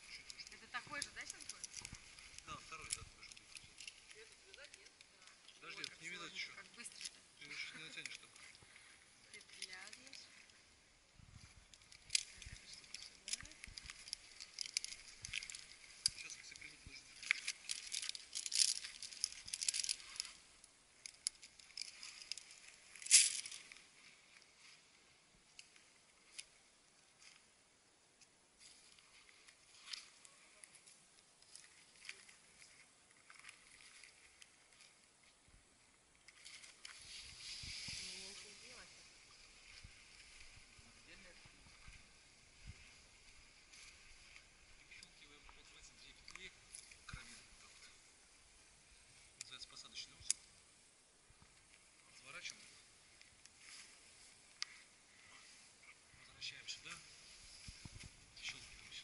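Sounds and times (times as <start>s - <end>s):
rope rasping and rustling: 0.0s - 10.3s, 11.3s - 24.9s, 28.6s - 35.5s, 36.2s - 50.1s, 51.4s - 59.0s.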